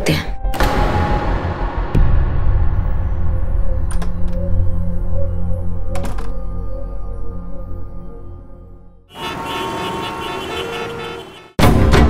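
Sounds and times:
soft dramatic music: 0.0s - 9.1s
street traffic noise: 9.1s - 11.6s
car horns: 9.1s - 11.7s
loud punchy music: 11.6s - 12.0s.

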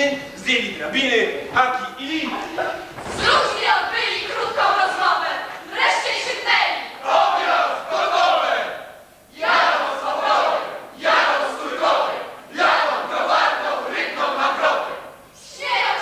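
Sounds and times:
group of voices chanting: 2.4s - 16.0s.

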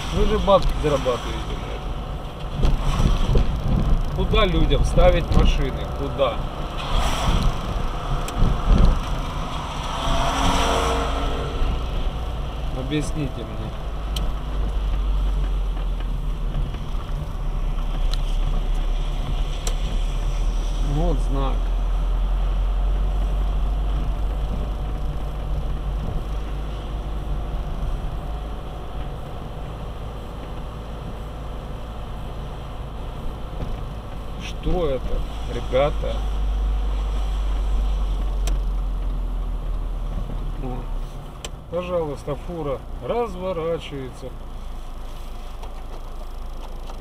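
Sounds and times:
tyres hissing on wet road: 0.0s - 43.0s, 43.7s - 46.4s
car engine and road rumble: 0.0s - 47.0s.

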